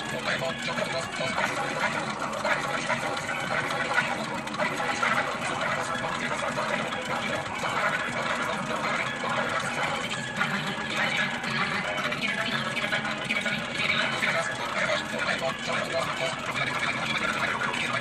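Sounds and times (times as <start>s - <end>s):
background music with voice: 0.0s - 18.0s.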